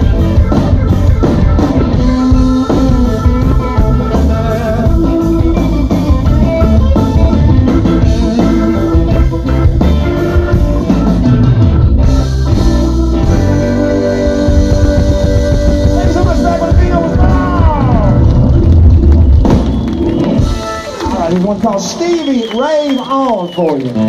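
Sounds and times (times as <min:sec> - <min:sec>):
electric guitar lead: 0:00.0 - 0:22.6
live blues-rock band: 0:00.0 - 0:23.1.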